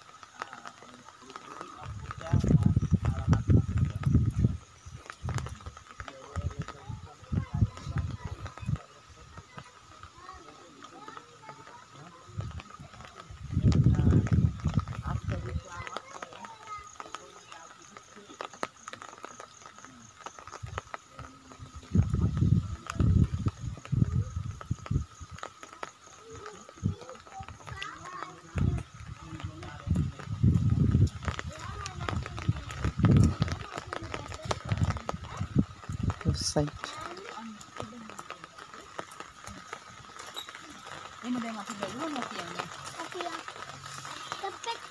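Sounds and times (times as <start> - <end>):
indistinct background voices: 0.0 - 44.9.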